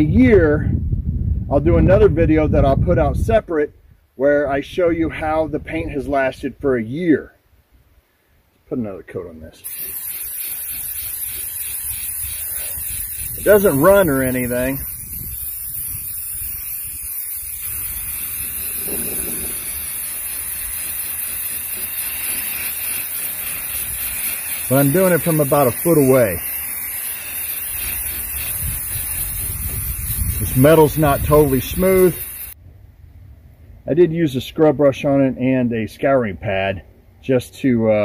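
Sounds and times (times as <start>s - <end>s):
spray paint can hissing: 9.6s - 32.6s.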